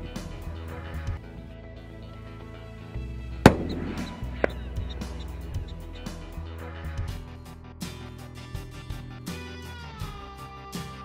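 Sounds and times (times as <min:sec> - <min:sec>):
background music: 0:00.0 - 0:11.0
rifle shot with echo: 0:03.5 - 0:05.8
faint sharp crack: 0:03.5 - 0:06.1.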